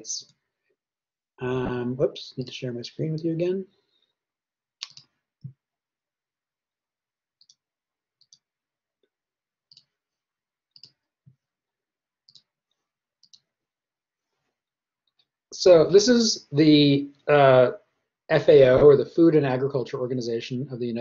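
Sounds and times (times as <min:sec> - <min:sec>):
computer mouse clicks: 0:04.8 - 0:05.2, 0:07.4 - 0:07.6, 0:08.2 - 0:08.4, 0:09.7 - 0:09.9, 0:10.8 - 0:11.0, 0:12.3 - 0:12.5, 0:13.2 - 0:13.5.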